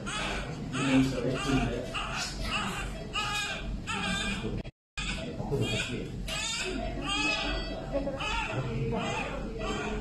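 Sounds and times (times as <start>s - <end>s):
newborn baby crying: 0.0s - 10.0s.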